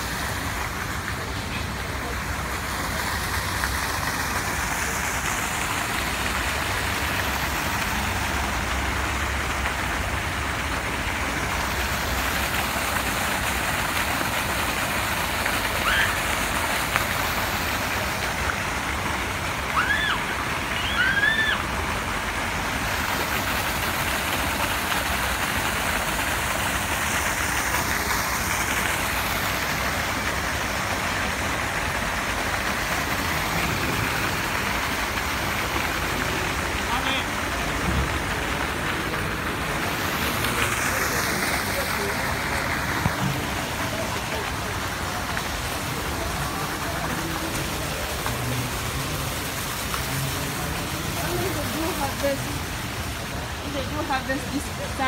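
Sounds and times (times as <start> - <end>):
water feature rushing: 0.0 - 55.0.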